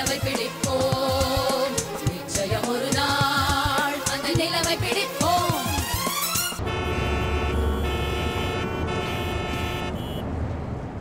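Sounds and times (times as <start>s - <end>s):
car and bus horns honking: 5.8s - 10.4s
rumble of engines: 6.6s - 11.0s.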